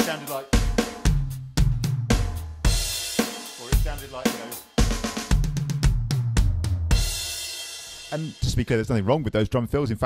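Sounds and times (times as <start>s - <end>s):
electronic drum fill: 0.0s - 7.4s
kick drum: 0.6s - 2.9s, 4.8s - 7.2s.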